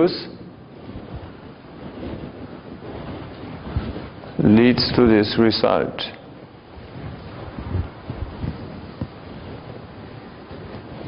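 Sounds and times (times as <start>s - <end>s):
low rumbling room noise: 0.0s - 11.0s.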